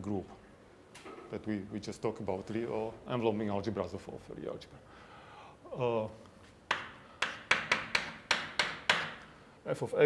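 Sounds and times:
chalk tapping on blackboard: 6.7s - 9.3s.

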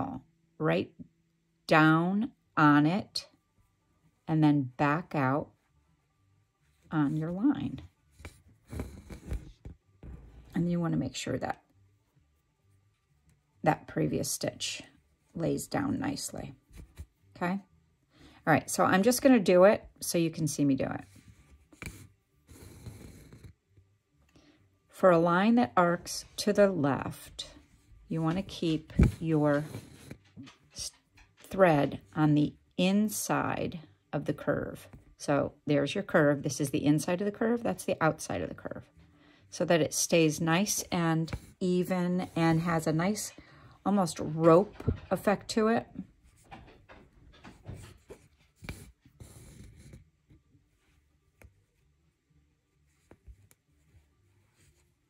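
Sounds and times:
thread pulled through cloth: 6.8s - 10.7s, 52.7s - 55.0s
thread rasping through fabric: 7.1s - 10.6s, 20.6s - 23.9s, 47.5s - 50.5s.

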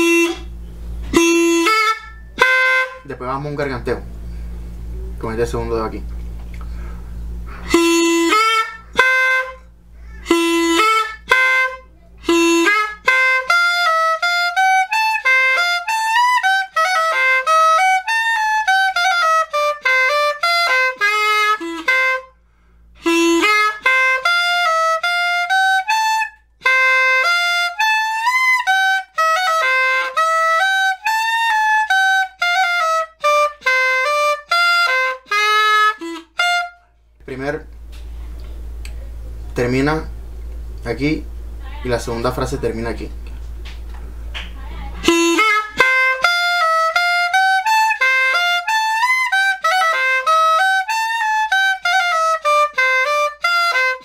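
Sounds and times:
cane clarinet playing quick melody: 0.0s - 3.1s, 7.6s - 22.3s, 23.0s - 36.8s, 45.0s - 54.0s.

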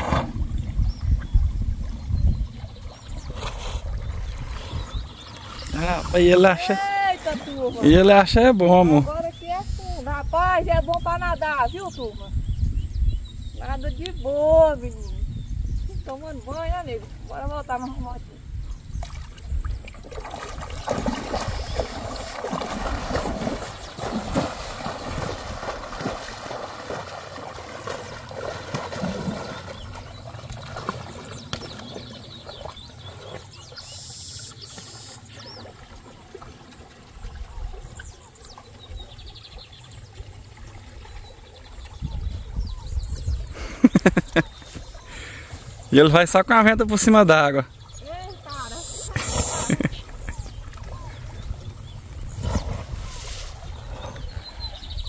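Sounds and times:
water sloshing and trickling: 0.0s - 12.2s, 18.8s - 55.0s.

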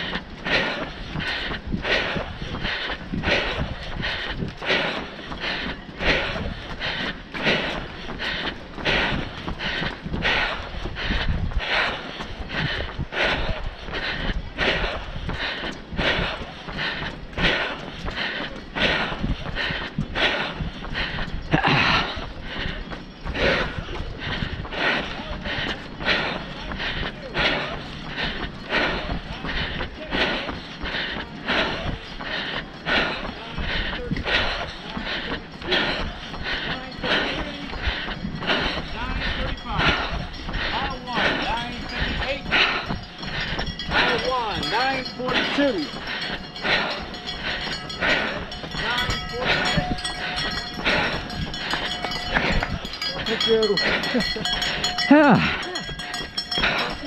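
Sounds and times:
wind noise on microphone: 0.0s - 5.4s, 6.0s - 16.8s
runner breathing: 0.0s - 57.0s
running footfalls: 0.0s - 57.0s.

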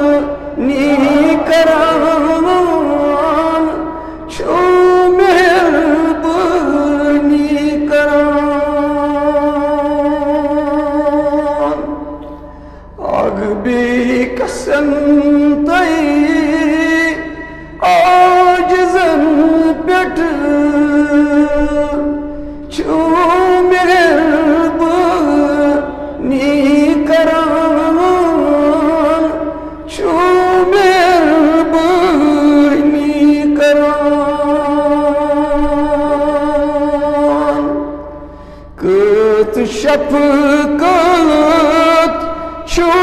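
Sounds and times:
man singing long note: 0.0s - 43.0s.

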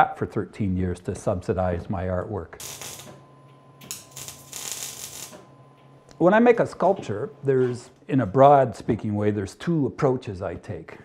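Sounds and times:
welding arc crackling: 2.6s - 3.2s, 3.8s - 5.5s.

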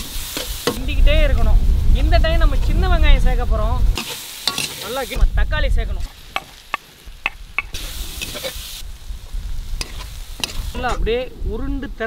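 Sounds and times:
food sizzling: 0.0s - 12.0s.

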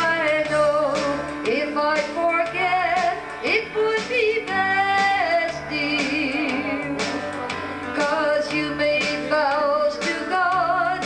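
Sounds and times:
acoustic and electric guitar song: 0.0s - 11.0s.

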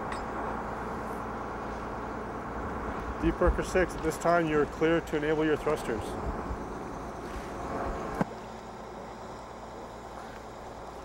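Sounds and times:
wind: 0.0s - 11.0s.

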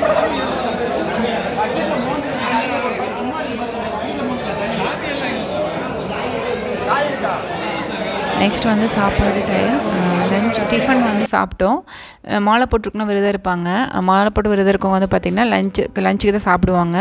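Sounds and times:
babble of overlapping voices: 0.0s - 13.4s.

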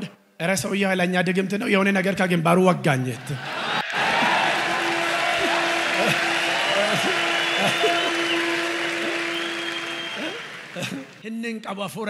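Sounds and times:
audience applause: 3.6s - 11.2s.

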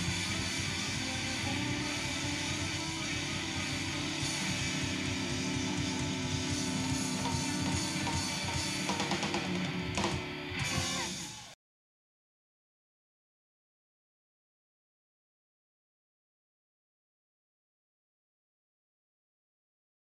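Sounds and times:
electric blues band playing: 0.0s - 11.5s
electric guitar: 0.0s - 11.6s.

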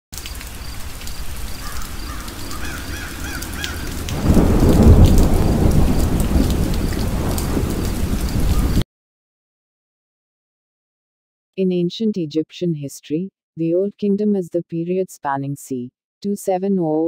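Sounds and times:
steady rain falling: 0.2s - 8.8s
bird calling: 1.6s - 4.1s, 8.5s - 8.8s
thunder rolling: 2.1s - 8.8s.

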